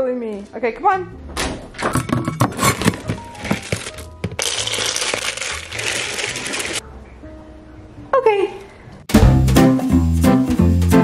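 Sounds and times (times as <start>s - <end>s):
background music: 0.0s - 11.0s
kibble poured into bowl: 3.4s - 6.8s.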